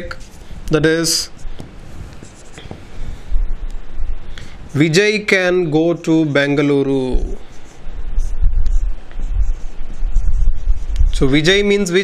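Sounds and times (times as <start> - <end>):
marker pen writing on whiteboard: 0.0 - 2.9, 6.8 - 12.0.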